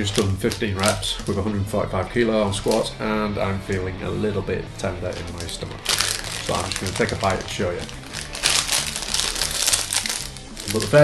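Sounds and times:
plastic wrapper crinkling: 0.0 - 1.5, 2.5 - 3.0, 5.0 - 11.0.

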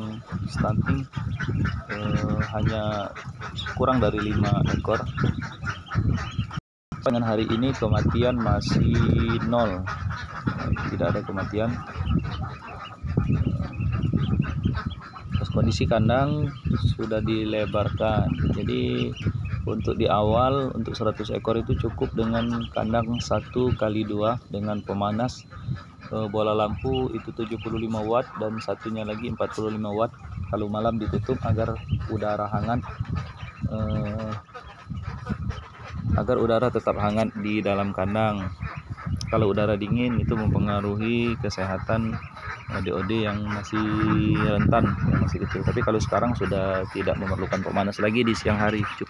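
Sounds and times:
ducklings peeping: 0.0 - 49.0.

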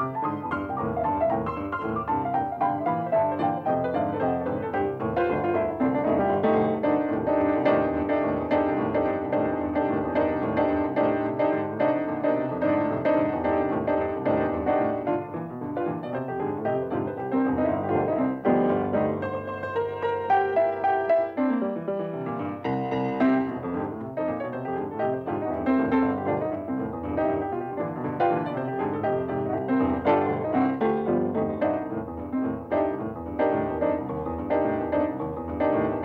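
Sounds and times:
solo blues piano: 0.0 - 36.0.

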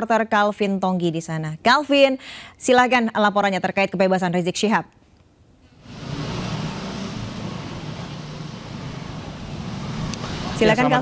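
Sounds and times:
road traffic rumble: 5.8 - 11.0.

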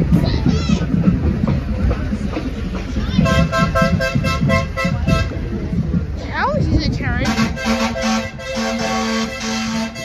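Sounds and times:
crowd chatter: 0.0 - 10.0
vehicle horn short toots: 7.2 - 10.0.

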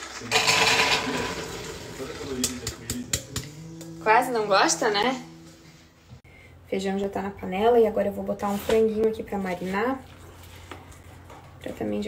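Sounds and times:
beans pouring into a pot: 0.0 - 2.6.

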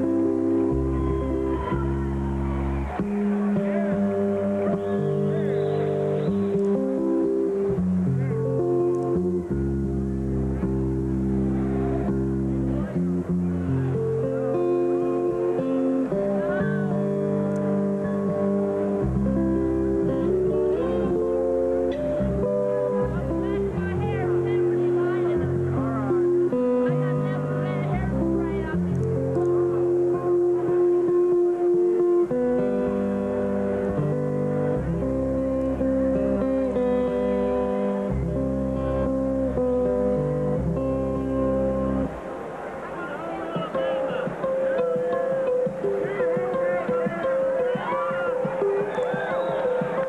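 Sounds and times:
finger-style acoustic guitar: 0.0 - 42.2, 43.6 - 50.0.

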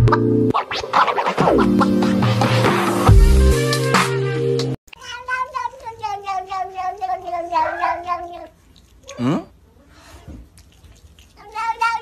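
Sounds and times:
background music: 0.0 - 4.8
cat meowing: 4.9 - 9.5.

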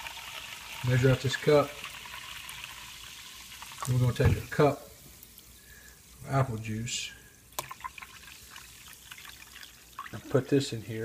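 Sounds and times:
juice pouring from a bottle: 0.0 - 4.8, 7.4 - 10.7
soda fizzing: 0.0 - 10.9.

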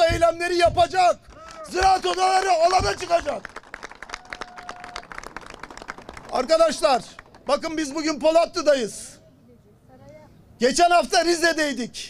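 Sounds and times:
crowd applauding: 1.3 - 7.8.

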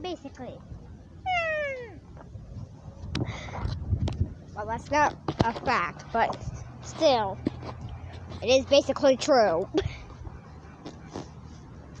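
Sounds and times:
high animal call: 1.2 - 2.0.

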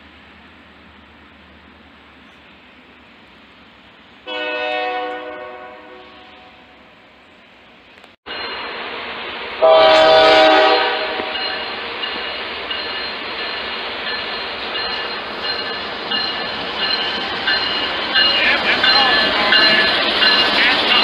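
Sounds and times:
diesel locomotive engines running: 0.0 - 21.0
train wheels on rails: 0.0 - 21.0
locomotive horn chord: 4.2 - 7.0, 9.6 - 11.6.

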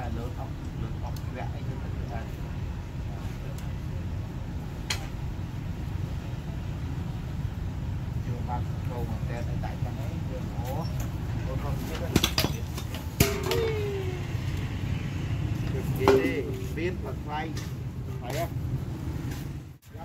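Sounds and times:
indistinct voices: 8.4 - 18.5.

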